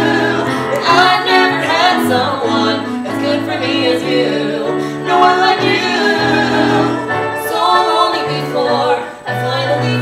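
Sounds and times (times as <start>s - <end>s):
instrumental accompaniment: 0.0s - 10.0s.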